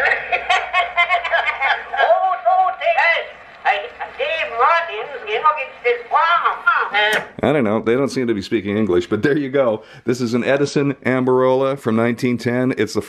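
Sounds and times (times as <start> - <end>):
voices talking on a phonograph: 0.0 - 13.0.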